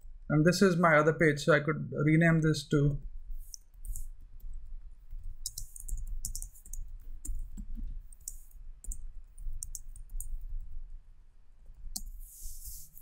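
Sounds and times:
computer keyboard typing: 5.1s - 10.7s, 11.9s - 13.0s.

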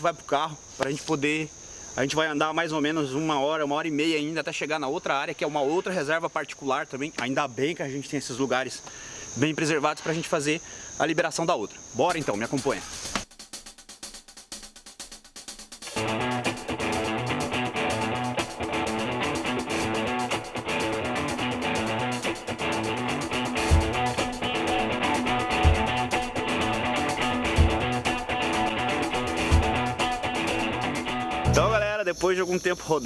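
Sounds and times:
guitar music with drums: 15.8s - 31.9s
deep drum beat: 21.7s - 31.9s.

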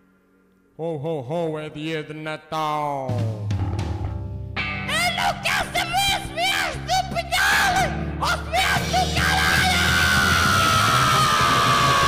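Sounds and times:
heavy metal band playing: 3.1s - 12.0s.

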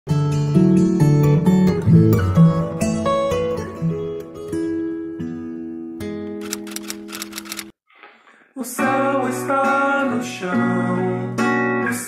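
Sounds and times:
plucked acoustic guitar: 0.2s - 6.3s
quick run of clicks: 6.4s - 7.7s.

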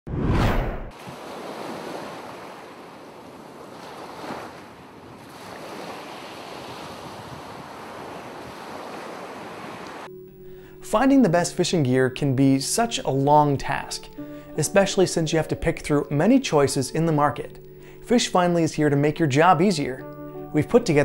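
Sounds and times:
ocean waves washing: 0.4s - 10.1s.

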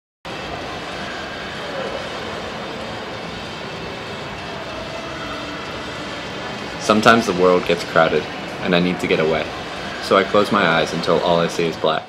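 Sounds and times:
building hum: 0.3s - 11.8s
crowd murmur: 0.3s - 12.0s.

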